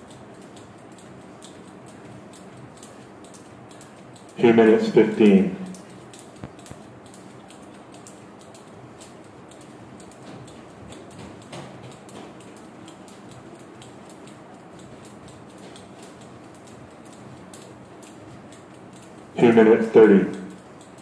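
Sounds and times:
jump rope ticking on floor: 0.0 - 21.0.

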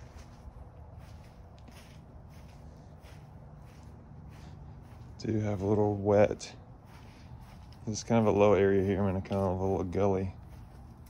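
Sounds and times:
faint footsteps: 0.0 - 11.0
steady low rumble: 0.0 - 11.0.

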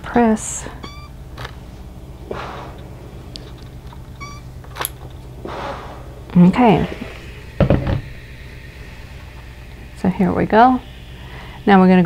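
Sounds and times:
high-pitched chirps: 0.8 - 1.2, 4.1 - 4.6
iron hissing on fabric: 1.6 - 12.0.

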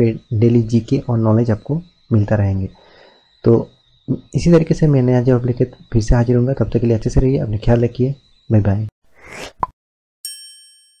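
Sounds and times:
bright bell-like ding: 10.2 - 11.0.

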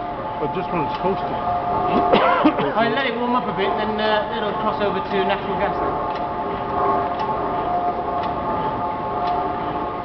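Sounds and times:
gas engine running: 0.0 - 10.0
steady hum: 0.0 - 10.0
regular engine click: 0.8 - 1.3, 5.4 - 8.4, 9.2 - 9.4.

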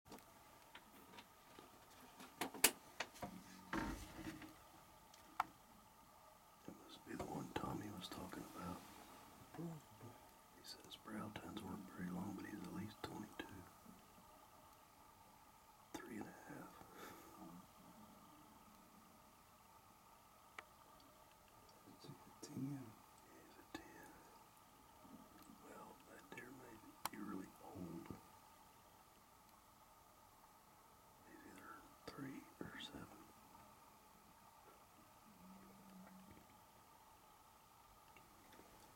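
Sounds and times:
person whispering: 6.7 - 13.8, 15.9 - 17.7, 21.9 - 24.4, 25.5 - 28.2, 31.3 - 33.3.

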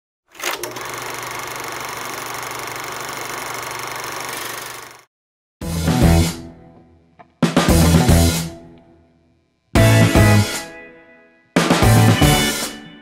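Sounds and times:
music with drums: 5.6 - 6.5, 7.4 - 8.6, 9.8 - 10.8, 11.6 - 13.0
mechanical buzz with low hum: 8.4 - 9.8.

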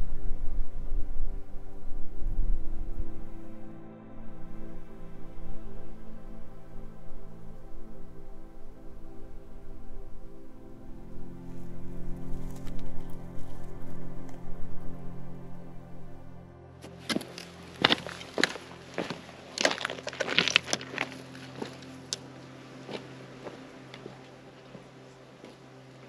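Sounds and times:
soft ambient instrumental music: 0.0 - 26.0
footsteps crunching on stony trail: 12.2 - 14.4, 16.8 - 26.0.

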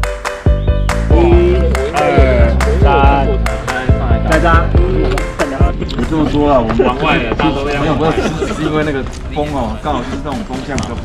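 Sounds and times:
music with drums and bass: 0.0 - 6.3
person speaking: 1.1 - 8.6.

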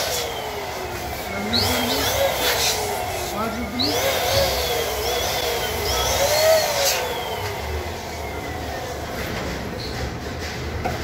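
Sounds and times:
electric balloon pump running: 0.0 - 10.9.

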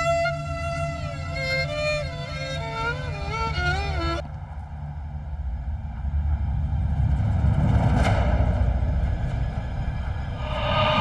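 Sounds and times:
low rumbling drone: 4.4 - 11.0
whoosh: 10.1 - 11.0.

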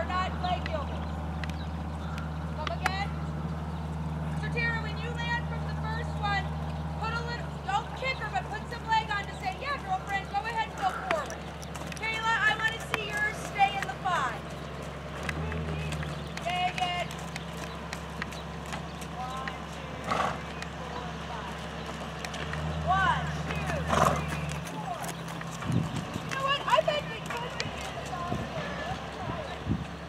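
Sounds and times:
hoofbeats on soft dirt: 0.0 - 30.0
voices speaking: 0.0 - 30.0.

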